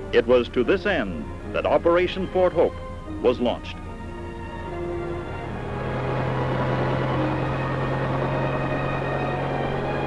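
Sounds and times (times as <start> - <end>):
helicopter rotor drone: 0.0 - 10.0.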